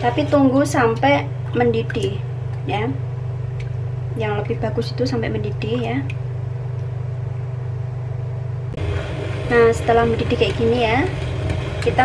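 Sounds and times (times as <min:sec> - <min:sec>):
induction hob humming: 0:00.0 - 0:12.0.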